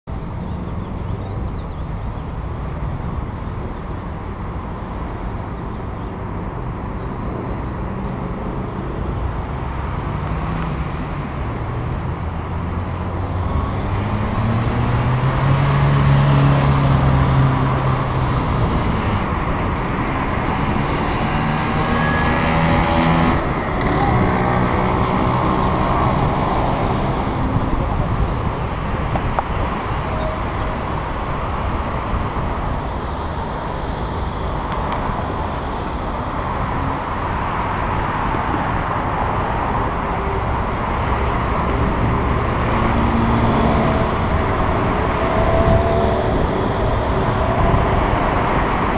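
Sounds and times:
motor vehicles passing: 0.1 - 48.9
road noise rushing: 1.9 - 48.9.

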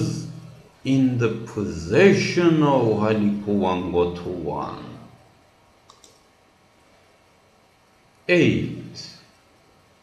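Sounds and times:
small sharp clicks: 5.8 - 6.3.

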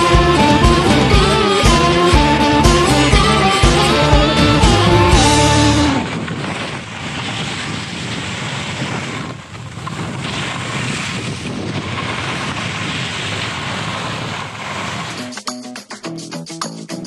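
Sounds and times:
wind on microphone: 0.0 - 15.2
sliding over snow: 0.0 - 15.3.

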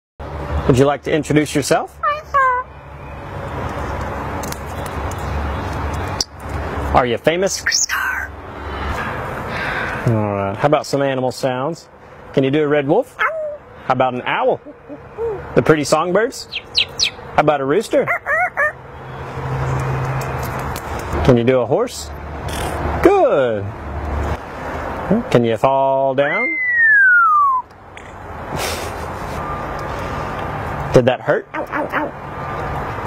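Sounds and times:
parrot high voice-like syllables: 2.0 - 2.7, 13.2 - 13.6, 18.1 - 18.8, 31.5 - 32.2
parrot imitating rooster crow: 18.1 - 18.8.

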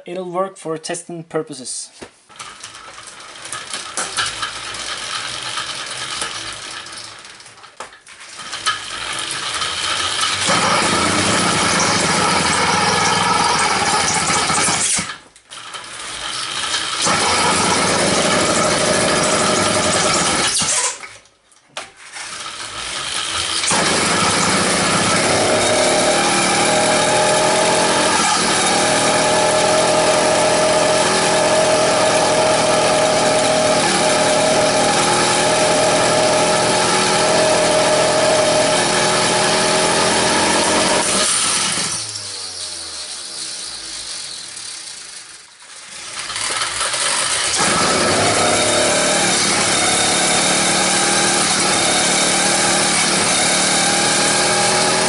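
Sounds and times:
two-stroke engine running: 2.6 - 7.3, 8.4 - 20.8, 22.2 - 55.0.

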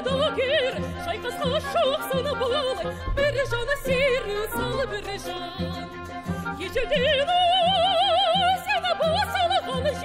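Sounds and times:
operatic singer: 0.0 - 10.0
orchestra playing low chords: 2.8 - 7.9.

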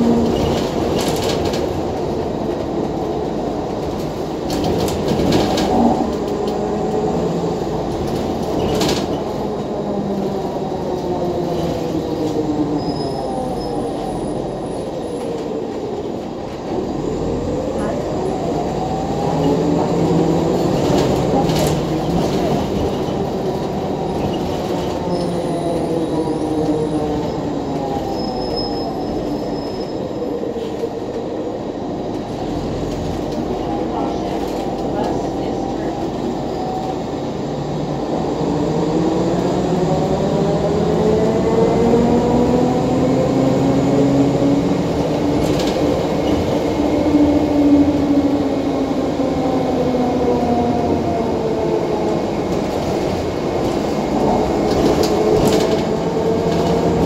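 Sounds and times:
road noise: 0.0 - 57.0.

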